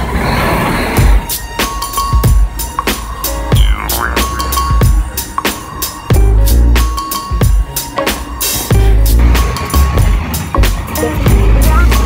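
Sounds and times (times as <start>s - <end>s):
busy bus station noise: 0.0s - 12.0s
electronic music with drum hits: 1.0s - 12.0s.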